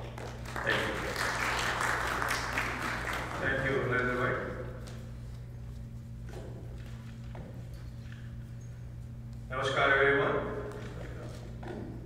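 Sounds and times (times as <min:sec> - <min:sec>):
low hum from pa system: 0:00.0 - 0:12.0.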